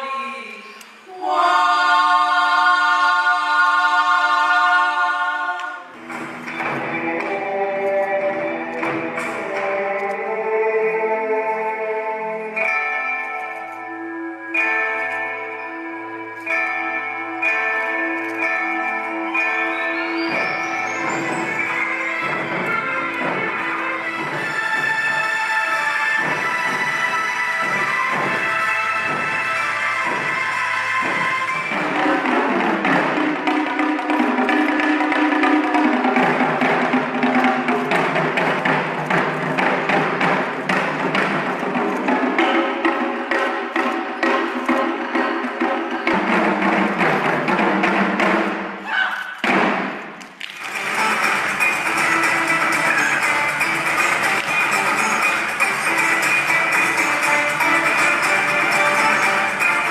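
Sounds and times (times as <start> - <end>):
music playing along: 1.2 - 48.8, 49.4 - 59.9
music with steady melody: 5.8 - 48.7, 50.6 - 59.9
barrel drums beaten with sticks: 26.2 - 48.8, 49.4 - 50.2.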